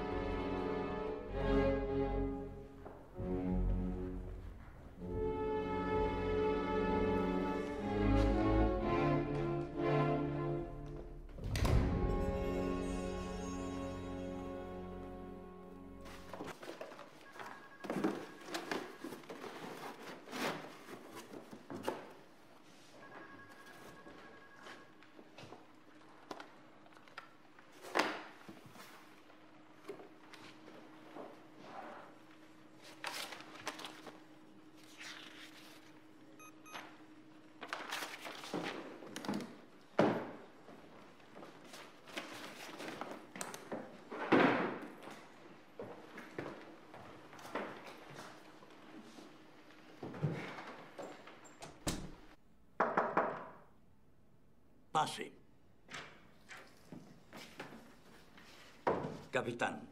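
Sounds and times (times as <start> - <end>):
office objects thudding: 38.5 - 40.5, 44.1 - 45.0.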